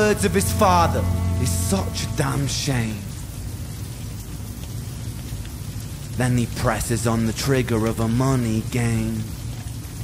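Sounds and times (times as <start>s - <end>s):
low steady hum: 0.0s - 6.6s
rain falling: 0.0s - 10.0s.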